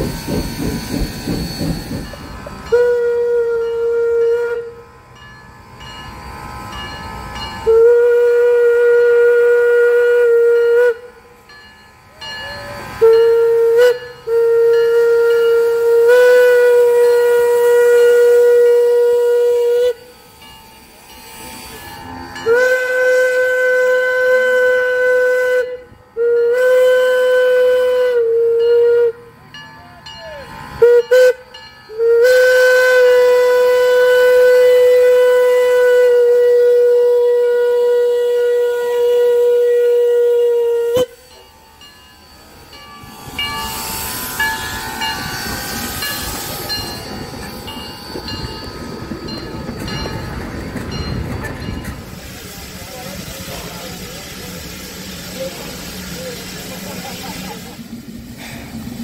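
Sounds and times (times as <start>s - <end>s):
steam locomotive whistle: 0.0s - 5.2s, 6.8s - 20.4s, 21.0s - 29.4s, 30.0s - 50.6s
train wheels on rails: 0.0s - 59.0s.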